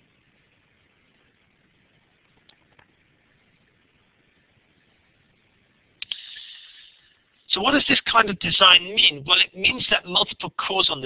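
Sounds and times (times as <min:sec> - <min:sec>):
mouth click: 0:06.0 - 0:06.7
indrawn breath hiss: 0:06.0 - 0:07.2.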